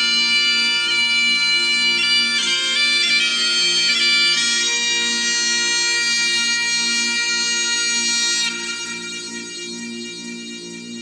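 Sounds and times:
bagpipes playing slow melody: 0:00.0 - 0:11.0.

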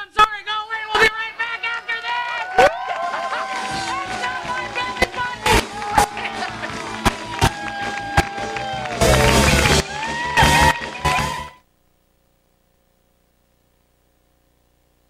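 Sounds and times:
drum hits: 0:03.6 - 0:11.5
live band music: 0:03.6 - 0:11.6.

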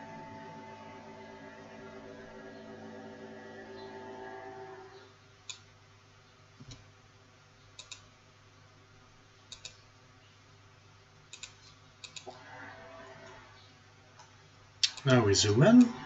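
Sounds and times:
computer mouse clicking: 0:07.8 - 0:08.1, 0:09.5 - 0:09.8, 0:11.3 - 0:12.4.

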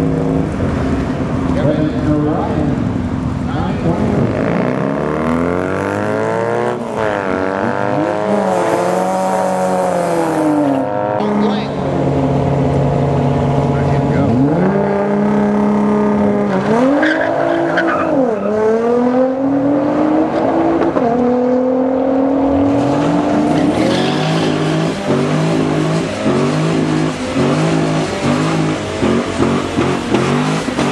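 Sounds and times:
car engines idling: 0:00.0 - 0:04.5, 0:11.2 - 0:16.6, 0:22.6 - 0:30.9
cars accelerating through gears: 0:00.0 - 0:30.9.

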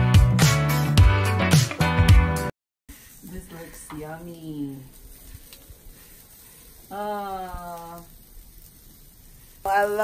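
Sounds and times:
low steady hiss: 0:02.9 - 0:10.0.

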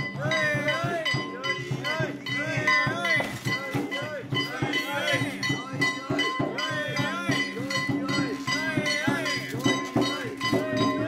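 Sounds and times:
drum beats: 0:00.0 - 0:11.0
metal bell or gong struck: 0:00.0 - 0:11.0.

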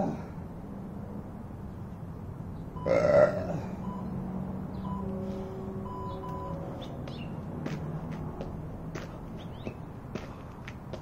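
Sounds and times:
man's throaty grunt: 0:02.8 - 0:03.8
faint steady tones: 0:03.6 - 0:07.0.

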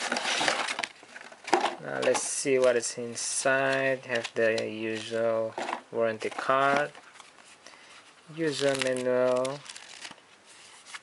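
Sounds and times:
cardboard box rustling and scraping: 0:00.0 - 0:01.6.

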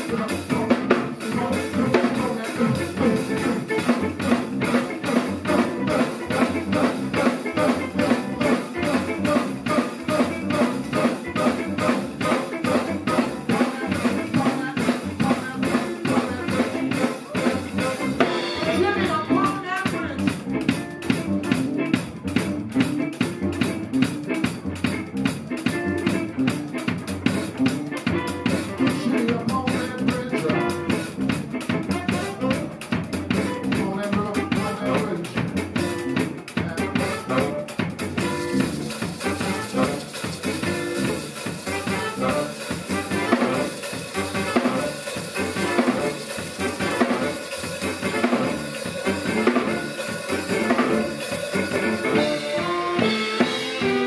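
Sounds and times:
bass guitar: 0:00.0 - 0:54.0
drum kit: 0:00.0 - 0:54.0
electric guitar: 0:00.0 - 0:54.0
saxophone: 0:00.0 - 0:54.0.

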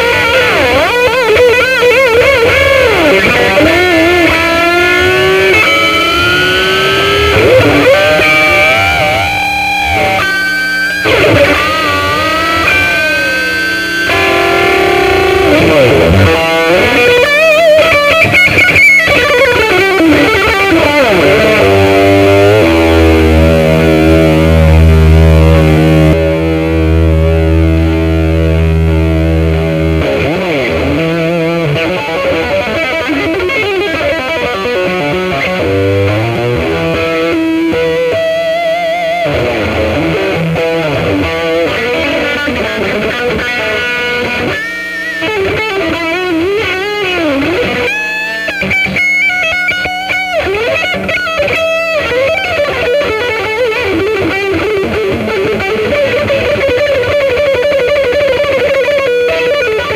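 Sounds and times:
electric guitar lead bends: 0:00.0 - 0:59.9.

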